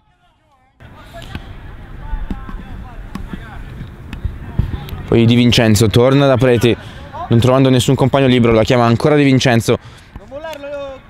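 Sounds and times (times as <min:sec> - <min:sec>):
football kicked and bouncing: 0:01.3 - 0:01.6, 0:02.2 - 0:04.9.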